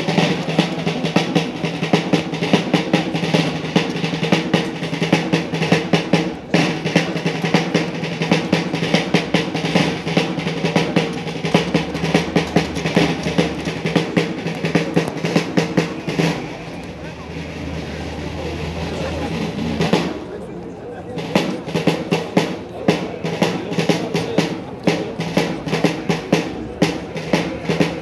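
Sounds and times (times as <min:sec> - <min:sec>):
military snare and bass drums: 0:00.0 - 0:20.4, 0:21.0 - 0:28.0.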